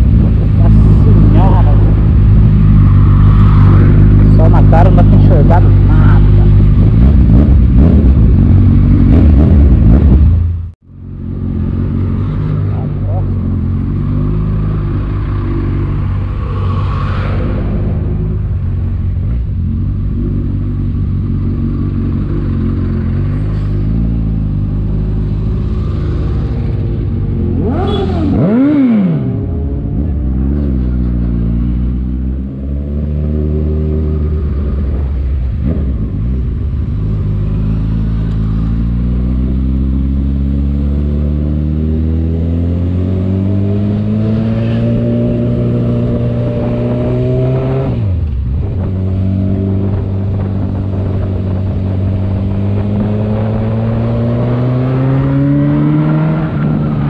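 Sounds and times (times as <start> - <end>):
motorcycle engine while riding: 0.0 - 57.0.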